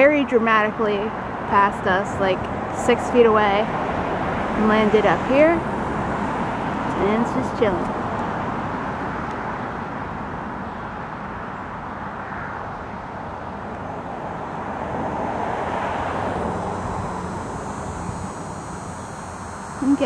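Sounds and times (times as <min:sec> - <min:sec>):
distant motor vehicles rushing: 0:00.0 - 0:20.0.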